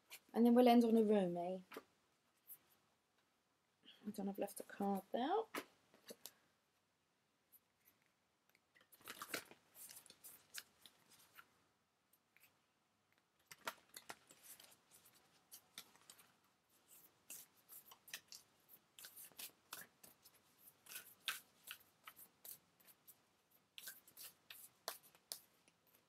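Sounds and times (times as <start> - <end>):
cards being shuffled: 8.8 - 11.5, 13.4 - 26.0.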